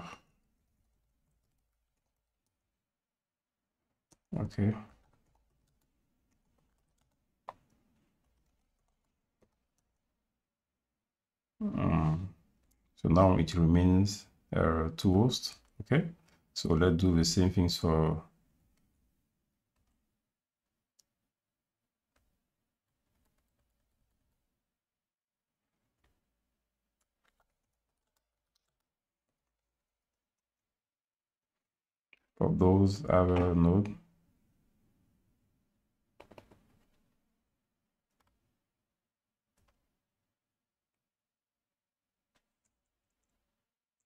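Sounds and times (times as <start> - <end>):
keyboard typing: 0.8 - 2.6, 4.1 - 10.2, 22.9 - 24.4, 26.0 - 30.6, 36.2 - 37.0, 38.1 - 38.5, 39.5 - 40.1, 42.3 - 43.7
keyboard keystrokes: 36.2 - 37.0.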